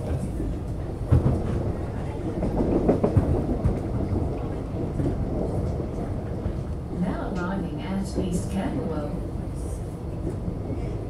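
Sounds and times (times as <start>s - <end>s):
sharp knocks of train: 0.0s - 9.0s
train wheels rumbling on track: 0.0s - 11.0s.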